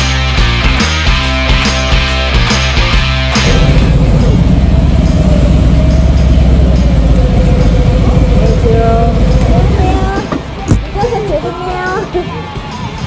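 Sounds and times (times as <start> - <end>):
motorcycle engine rumbling: 2.6 - 11.4.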